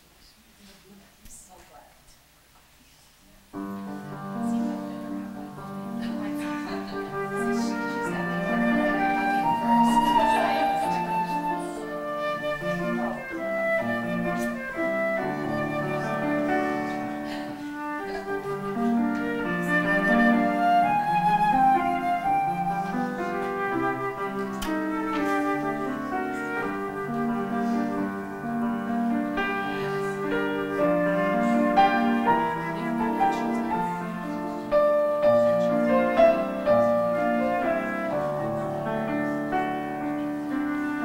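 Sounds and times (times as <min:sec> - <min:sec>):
piano chords: 0:03.4 - 0:41.0
flute melody: 0:03.6 - 0:41.0.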